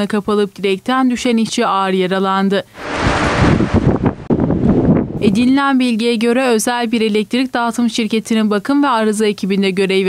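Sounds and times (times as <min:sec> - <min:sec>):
wind buffeting microphone: 0:02.8 - 0:06.1.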